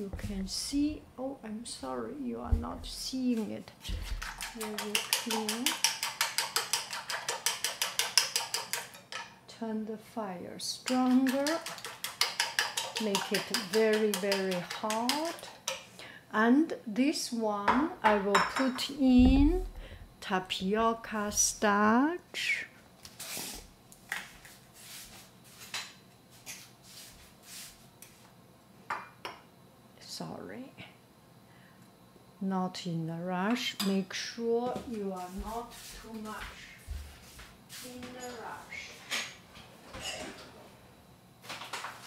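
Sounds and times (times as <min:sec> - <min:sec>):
chopsticks beating in ceramic bowl: 0:04.1 - 0:09.3, 0:10.9 - 0:15.4.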